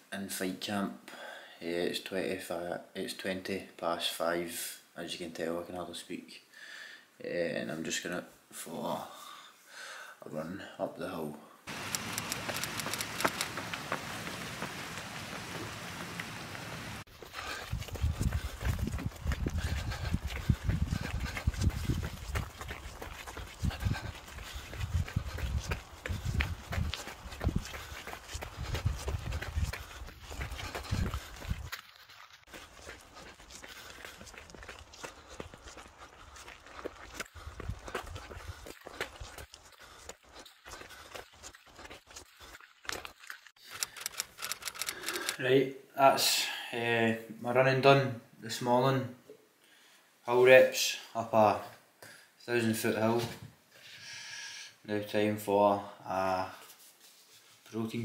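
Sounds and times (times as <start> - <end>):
running footsteps on gravel: 11.7 - 45.4
wind rumble on microphone: 17.5 - 22.8, 23.6 - 31.7.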